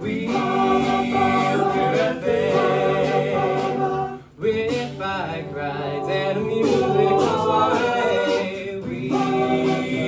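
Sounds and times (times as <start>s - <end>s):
men singing a cappella harmony: 0.0s - 10.0s.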